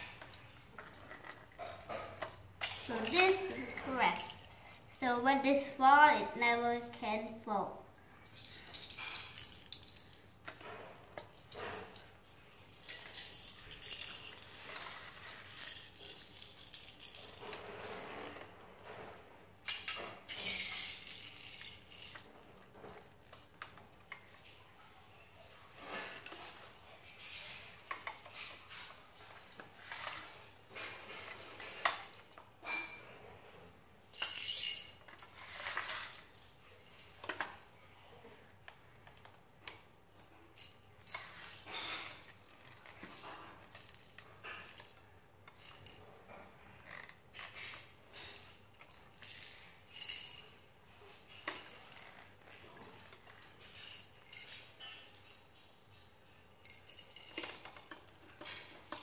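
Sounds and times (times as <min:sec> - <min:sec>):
plastic toy pieces clicking: 0:02.6 - 0:04.5, 0:19.7 - 0:22.2.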